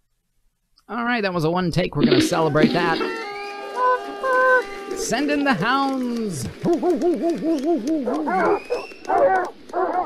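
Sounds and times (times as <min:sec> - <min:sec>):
dog howling: 0:03.0 - 0:05.0, 0:06.8 - 0:10.0
dog whining: 0:07.8 - 0:10.0.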